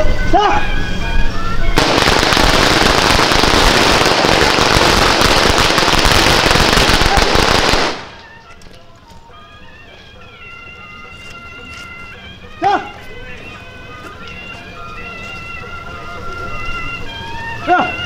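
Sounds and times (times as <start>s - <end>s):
faint music: 0.0s - 3.0s, 7.0s - 18.0s
firecrackers crackling: 1.8s - 8.8s.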